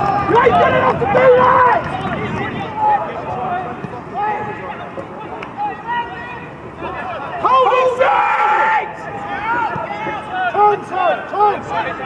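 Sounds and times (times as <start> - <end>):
men shouting: 5.7 - 12.0.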